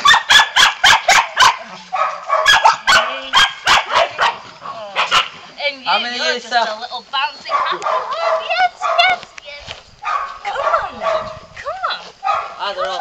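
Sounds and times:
puppies yapping: 0.0s - 5.4s, 7.3s - 9.2s.

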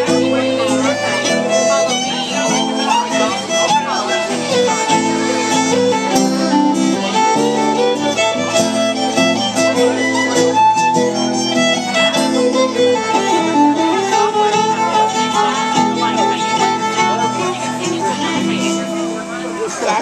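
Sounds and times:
fiddle playing melody: 0.0s - 20.0s
strummed acoustic guitar: 0.0s - 20.0s.

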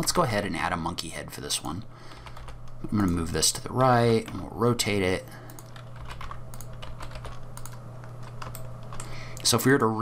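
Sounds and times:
steady low hum: 0.0s - 10.0s
keyboard and mouse clicking: 5.5s - 9.5s.

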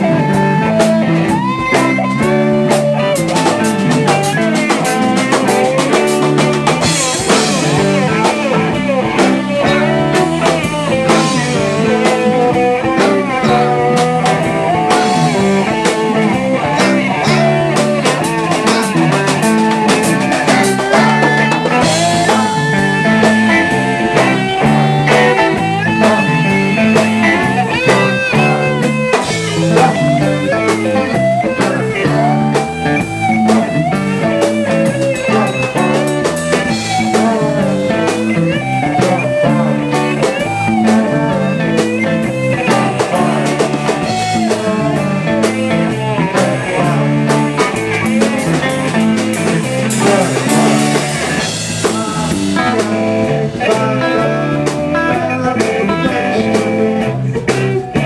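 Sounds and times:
bass guitar: 0.0s - 58.0s
drum kit beat: 0.0s - 58.0s
lead electric guitar: 0.0s - 58.0s.

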